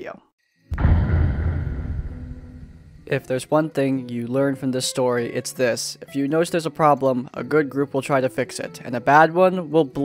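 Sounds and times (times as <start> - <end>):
low cinematic boom: 0.7 - 3.3.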